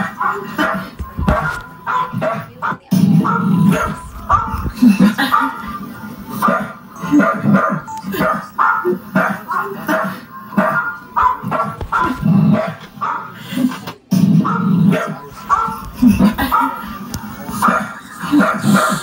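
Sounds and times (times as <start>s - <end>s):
dog barking: 0.0s - 13.5s, 14.4s - 19.0s
background music: 0.0s - 19.0s.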